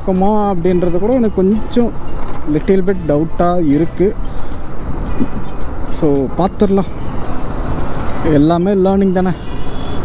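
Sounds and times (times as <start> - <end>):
person talking: 0.0 - 4.2, 8.2 - 9.4
surrounding traffic: 0.0 - 10.0.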